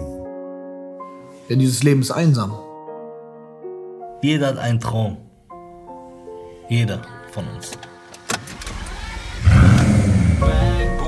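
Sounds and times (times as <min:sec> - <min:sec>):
ignition click: 0:07.7 - 0:10.0
car engine starting and running: 0:08.1 - 0:11.0.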